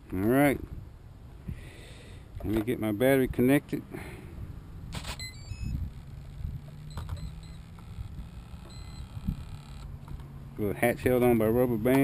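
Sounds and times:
motor beeps at stepping pitches: 5.0 - 9.9.

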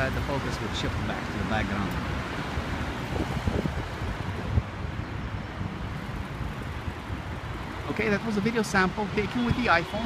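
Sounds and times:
city traffic rumble: 0.0 - 10.0
wind buffeting microphone: 0.0 - 10.0.

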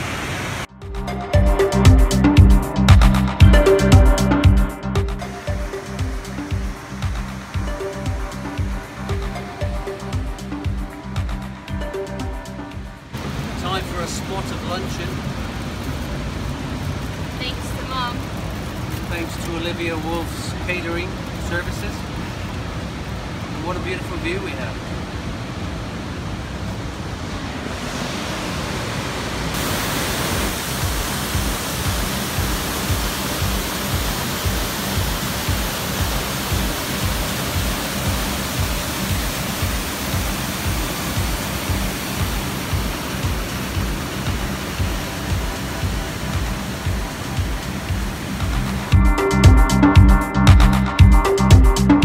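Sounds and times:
waterfall rushing: 0.0 - 52.0
background music with low beat: 0.7 - 13.1, 30.6 - 52.0.

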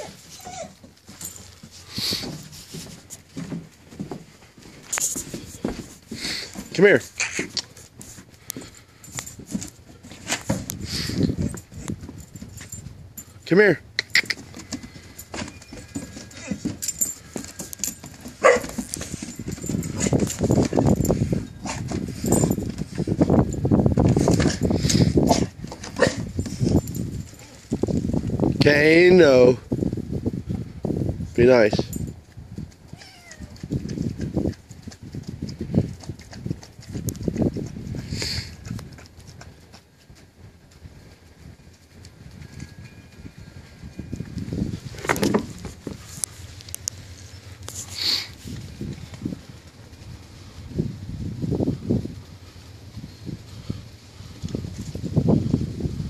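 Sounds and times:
puppy whimpering: 0.0 - 0.9
animals scuffling on wooden deck: 0.0 - 30.9, 31.7 - 56.0.

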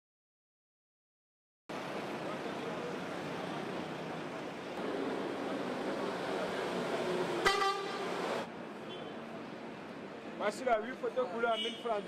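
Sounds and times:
traffic noise: 1.7 - 12.0
vehicle horn toot: 7.4 - 8.1.

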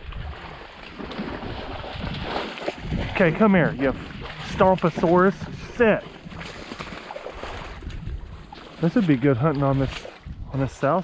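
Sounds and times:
sloshing in marsh water: 0.0 - 10.7
wind buffeting microphone: 0.0 - 11.0.

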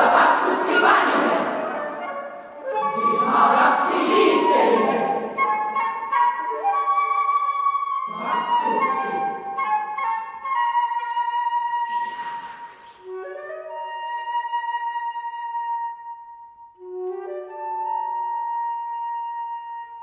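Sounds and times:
slow classical flute music: 0.2 - 20.0
breathy rush of noise: 11.9 - 13.2.

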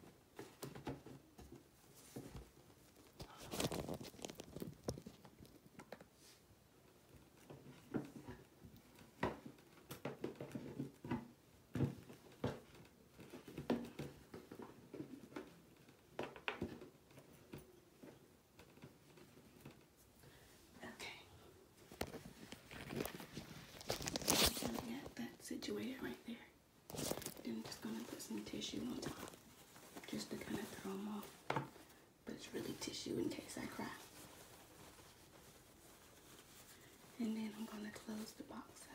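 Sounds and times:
tissue paper crinkling: 2.8 - 5.6, 22.0 - 25.2, 26.9 - 38.8
knocks and taps of handled objects: 7.4 - 19.8, 31.3 - 31.9.

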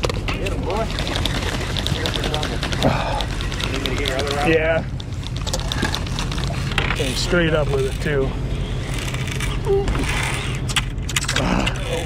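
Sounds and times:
fishing reel ticking: 0.8 - 4.6.

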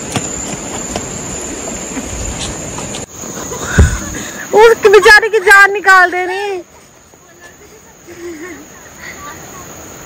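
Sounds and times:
continuous outdoor noise: 0.0 - 10.0
high insect drone: 0.0 - 10.0.

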